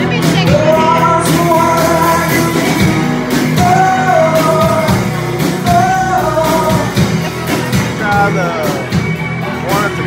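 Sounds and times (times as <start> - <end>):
person singing: 0.0 - 9.0
live band playing: 0.0 - 10.0.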